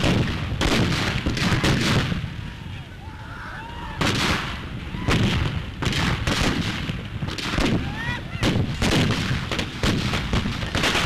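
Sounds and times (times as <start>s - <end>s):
gunshots: 0.0s - 2.3s, 4.0s - 11.0s
whooping cries: 2.5s - 4.1s, 7.8s - 8.5s.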